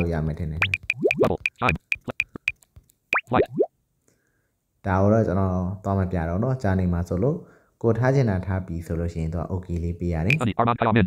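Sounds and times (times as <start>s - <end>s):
sharp electronic clicks: 0.0s - 3.7s, 10.3s - 10.5s
upward-gliding electronic plops: 0.0s - 3.7s, 10.3s - 10.5s.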